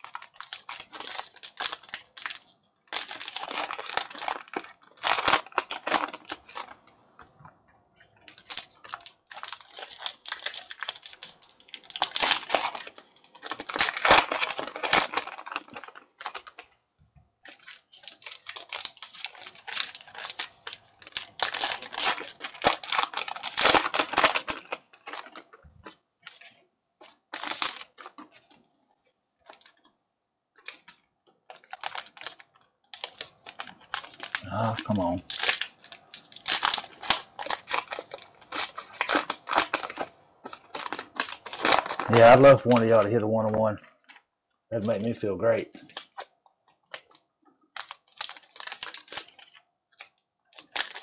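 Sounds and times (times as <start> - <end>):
cards rustling: 0.0 - 7.1, 7.8 - 16.7, 17.4 - 30.0, 30.6 - 51.0
paper wrappers crinkling and tearing: 0.0 - 16.8, 17.4 - 51.0.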